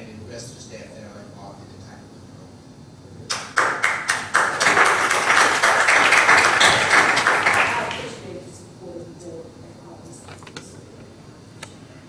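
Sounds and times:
group applauding: 3.3 - 8.3.

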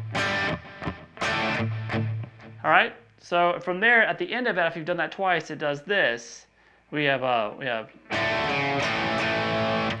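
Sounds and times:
electric guitar rock riff: 0.0 - 2.6, 8.0 - 10.0.

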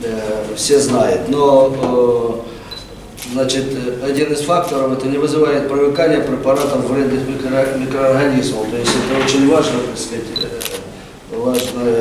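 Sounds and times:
man speaking: 0.0 - 2.5, 3.3 - 12.0.

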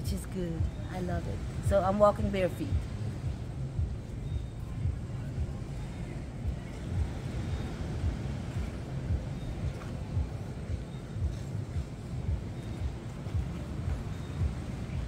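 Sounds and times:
wind noise on microphone: 0.0 - 15.0.

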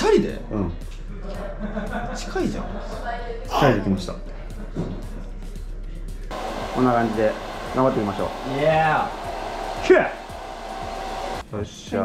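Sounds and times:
hair dryer running: 6.3 - 11.5.

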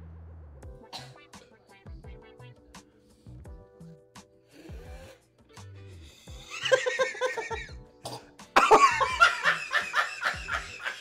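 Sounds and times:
background music with low beat: 0.0 - 11.0
person choking and gagging: 6.4 - 9.1
loud hard laughter: 6.5 - 7.7, 8.6 - 11.0.

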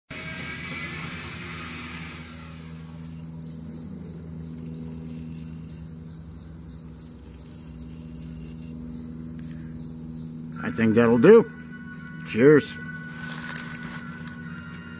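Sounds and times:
low hum: 0.1 - 14.9
insects chirping: 0.5 - 14.9.

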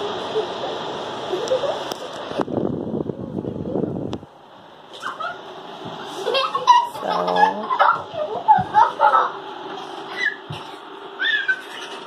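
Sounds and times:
fan running with airy hiss: 0.0 - 12.0
wind buffeting microphone: 2.4 - 4.3.

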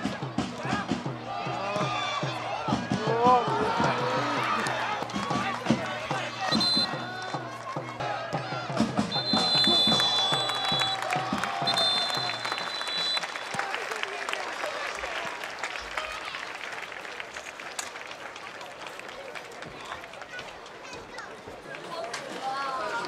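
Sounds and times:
crowd applause and cheering: 0.0 - 23.0
referee's whistle long blasts: 6.5 - 7.0, 9.1 - 13.6.

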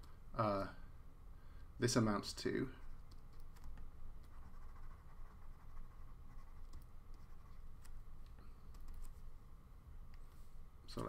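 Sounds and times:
low steady hum: 0.0 - 11.0
stylus tapping and scratching on screen: 2.8 - 10.5.

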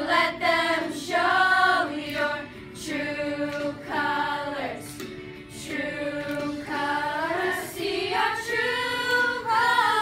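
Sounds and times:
girls singing a cappella: 0.0 - 10.0.

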